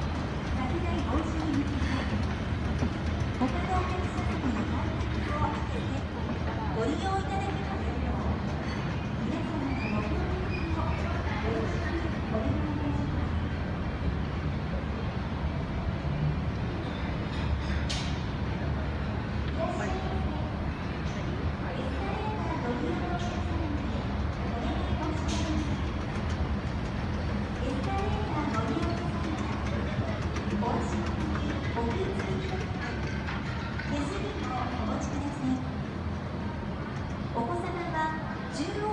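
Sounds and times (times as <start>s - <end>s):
escalator rumbling: 0.0s - 38.9s.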